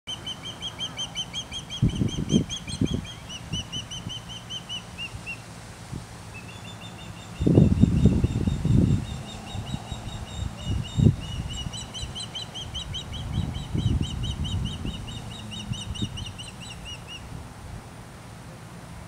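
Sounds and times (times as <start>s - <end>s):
osprey whistled chirps: 0.1s - 5.4s, 6.3s - 17.2s.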